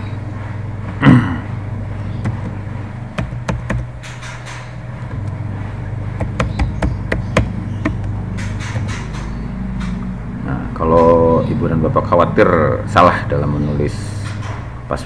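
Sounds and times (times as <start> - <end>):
steady low hum: 0.0 - 15.0
keyboard key clicks: 3.2 - 3.9.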